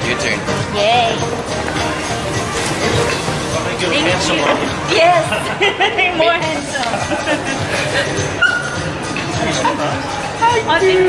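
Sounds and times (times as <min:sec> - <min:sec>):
crowd chatter: 0:00.0 - 0:11.0
laughter: 0:05.3 - 0:08.2.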